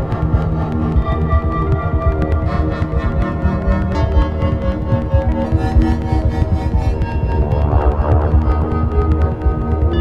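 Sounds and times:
fluctuating low bass: 0.0 - 10.0
held synth notes: 0.0 - 10.0.

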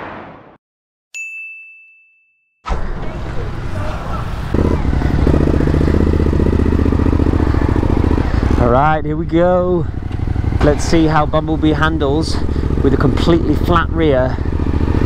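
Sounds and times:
chime ding: 1.2 - 2.5
motorcycle engine idling: 3.6 - 15.0.

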